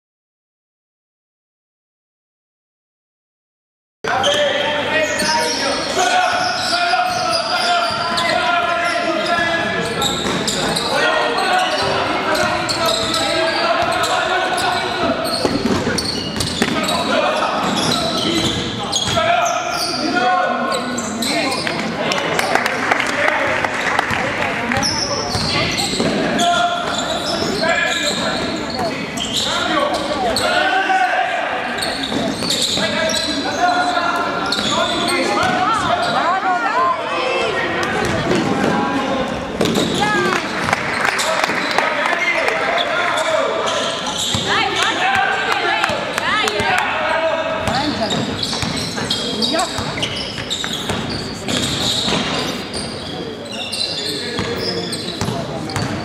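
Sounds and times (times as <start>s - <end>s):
basketball bouncing on court: 14.6s - 17.0s, 17.6s - 19.3s, 24.1s - 27.4s, 39.6s - 40.9s, 44.2s - 46.8s, 47.6s - 53.0s, 54.4s - 56.0s.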